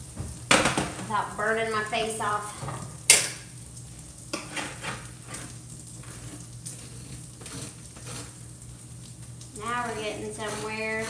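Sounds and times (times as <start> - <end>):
sausage sizzling in a skillet: 0.0 - 11.0
metal tray clattering on stovetop: 0.4 - 1.1
fork clicking and scraping: 6.7 - 8.4.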